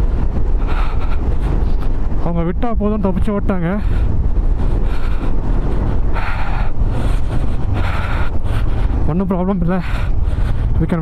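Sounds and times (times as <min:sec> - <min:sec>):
motorcycle engine drone: 0:00.0 - 0:11.0
wind rumble on microphone: 0:00.0 - 0:11.0.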